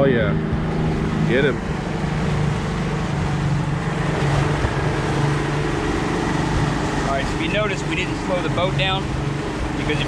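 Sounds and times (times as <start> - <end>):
boat engine running: 0.0 - 10.0
wind on microphone: 0.0 - 10.0
water rushing past hull: 0.3 - 10.0.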